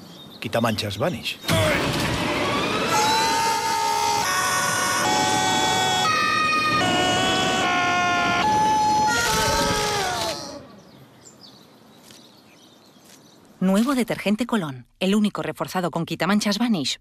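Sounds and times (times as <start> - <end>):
held pitched tones: 1.5 - 10.8.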